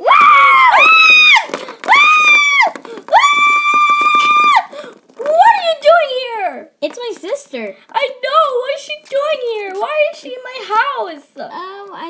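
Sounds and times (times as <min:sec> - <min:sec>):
girl screaming high-pitched: 0:00.0 - 0:04.7.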